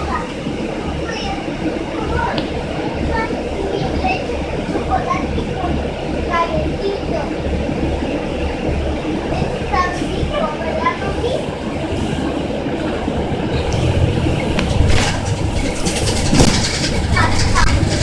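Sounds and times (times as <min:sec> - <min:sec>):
bus engine idling: 0:00.0 - 0:18.0
passengers and children chattering: 0:00.0 - 0:18.0.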